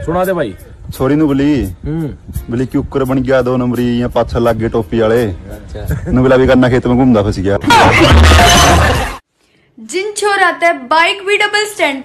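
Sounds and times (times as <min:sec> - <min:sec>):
loud crash: 0:07.7 - 0:09.2
people shouting: 0:07.7 - 0:09.2.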